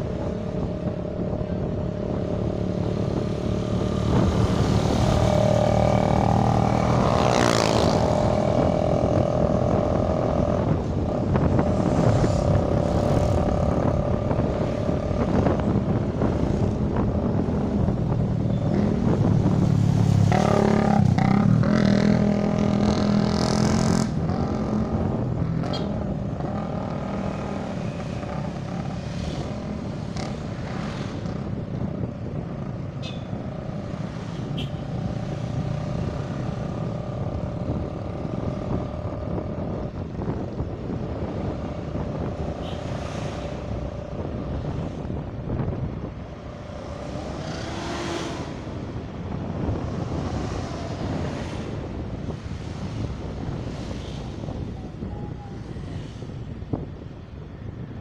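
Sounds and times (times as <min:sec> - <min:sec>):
road noise: 0:00.0 - 0:58.0.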